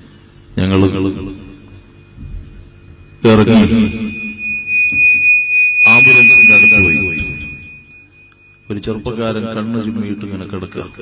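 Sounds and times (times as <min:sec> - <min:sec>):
microphone feedback tone: 0:00.4 - 0:11.0.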